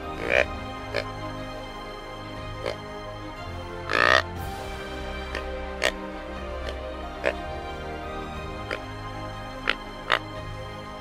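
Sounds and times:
deer grunt call: 0.0s - 1.2s, 3.9s - 4.3s, 5.3s - 7.4s
background music: 0.0s - 11.0s.

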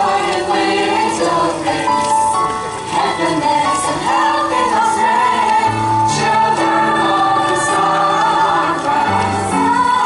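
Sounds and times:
unaccompanied choir singing: 0.0s - 10.0s.

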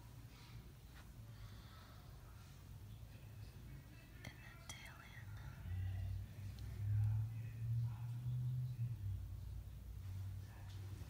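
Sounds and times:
low steady hum: 0.0s - 11.0s
faint whispering: 1.3s - 9.2s.

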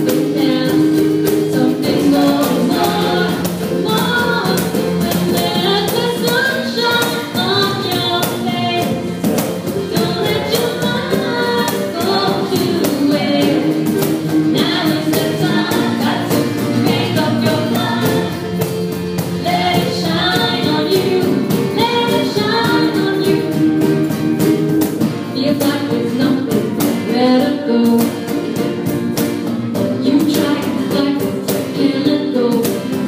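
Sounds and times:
woman singing lead: 0.0s - 24.2s, 25.1s - 29.1s, 29.8s - 33.0s
cajon beat: 0.0s - 33.0s
guitars: 0.0s - 33.0s
backing vocals: 0.2s - 18.6s.

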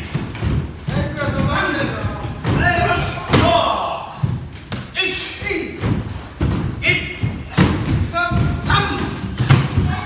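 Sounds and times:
bare feet thudding on wooden floor: 0.0s - 10.0s
people shouting: 2.5s - 4.2s, 6.8s - 10.0s.

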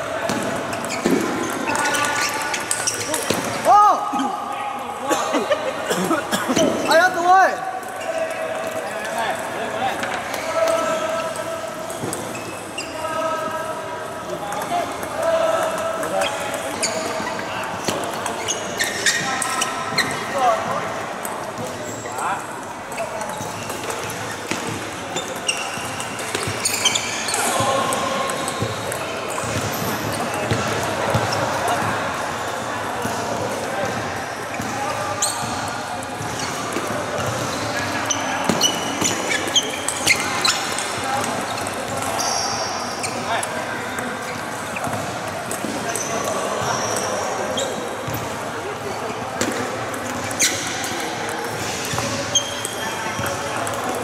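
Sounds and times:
players' voices and calls: 0.0s - 54.0s.

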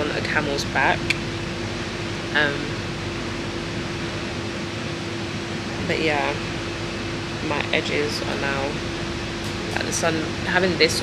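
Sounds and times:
woman saying um: 0.0s - 1.2s, 2.4s - 2.8s, 5.8s - 6.5s, 7.4s - 8.8s, 9.8s - 11.0s
ventilation hum: 0.0s - 11.0s.

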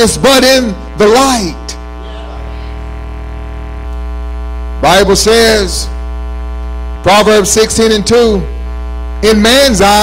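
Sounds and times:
man speaking: 0.0s - 2.8s, 4.8s - 6.0s, 7.0s - 8.5s, 9.2s - 10.0s
electrical mains hum: 0.0s - 10.0s.

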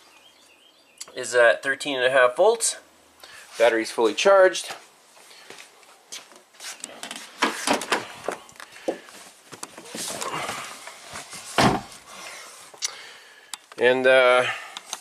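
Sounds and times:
rustling: 4.7s - 12.8s
heavy thump: 11.5s - 12.0s.

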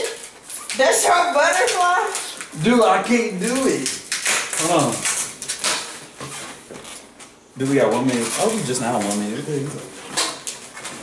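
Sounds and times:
balloons rubbing and rustling: 3.5s - 11.0s.

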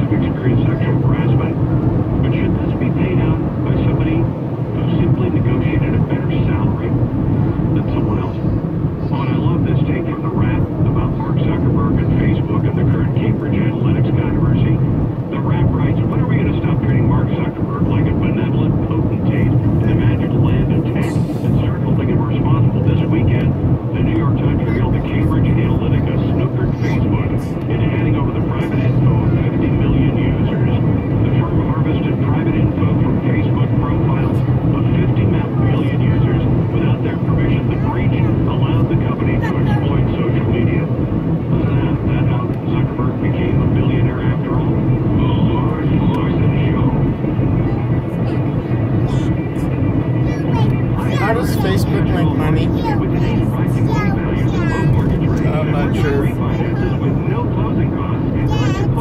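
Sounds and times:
faint indistinct talk: 0.0s - 1.5s, 7.8s - 40.9s, 41.5s - 59.0s
car road and engine rumble: 0.0s - 59.0s.

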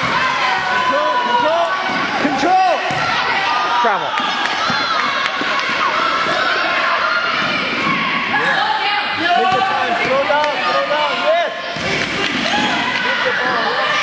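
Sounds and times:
people shouting and cheering: 0.0s - 14.0s
basketball bouncing on court: 2.8s - 3.3s.

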